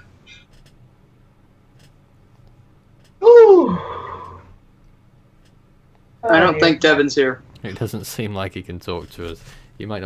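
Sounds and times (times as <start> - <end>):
person's falling wordless vocal: 3.2 - 4.5.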